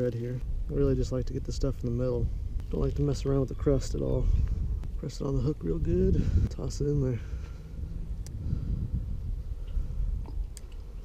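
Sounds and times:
low rumbling microphone noise: 0.0s - 11.0s.

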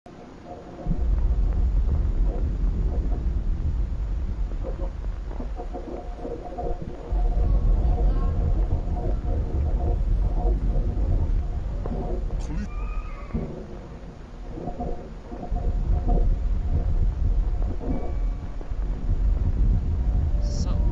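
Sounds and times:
deep continuous rumble: 0.1s - 20.9s
muffled garbled voices: 12.3s - 12.7s.

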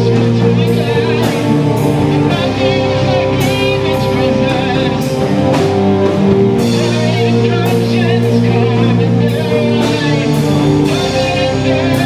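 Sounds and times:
bass guitar: 0.0s - 12.0s
drum kit: 0.0s - 12.0s
electric guitar: 0.0s - 12.0s
keyboard sustained notes: 0.0s - 12.0s.

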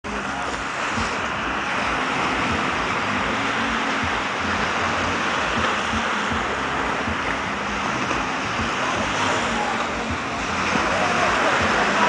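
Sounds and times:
rushing sea water: 0.0s - 12.0s
wind: 0.0s - 12.0s.

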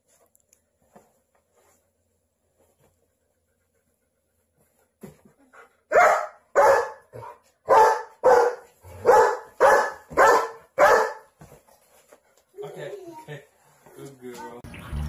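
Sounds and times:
dog barking loudly: 5.9s - 11.3s.

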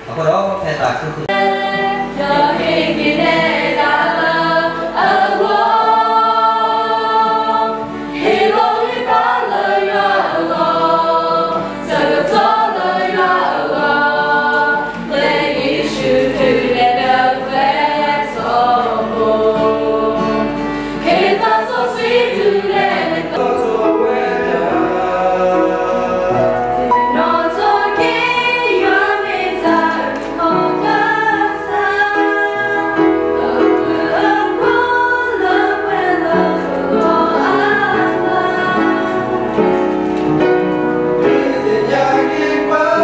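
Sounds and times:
mixed choir singing a hymn: 1.2s - 43.0s.

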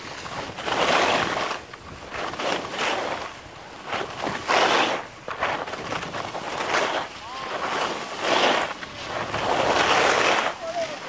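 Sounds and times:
skis scraping on snow: 0.0s - 11.0s
wind on microphone: 3.8s - 11.0s.

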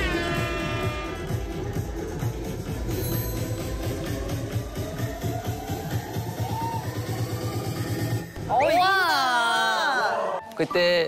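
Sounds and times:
electronic dance music: 0.0s - 9.1s.

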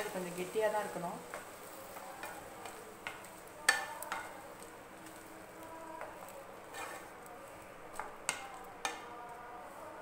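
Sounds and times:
faint simmering sizzle: 0.0s - 10.0s
spatula stirring in a pan: 0.0s - 10.0s.

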